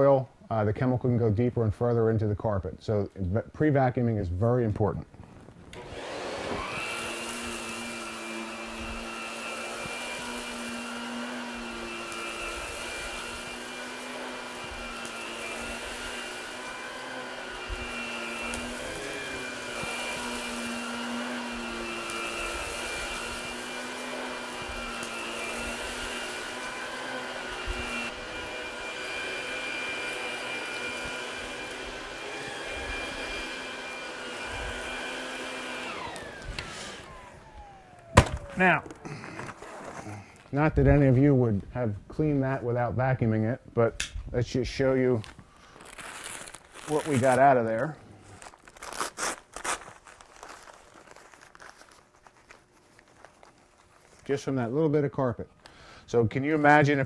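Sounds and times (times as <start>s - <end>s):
vacuum cleaner motor whine: 5.7s - 41.0s.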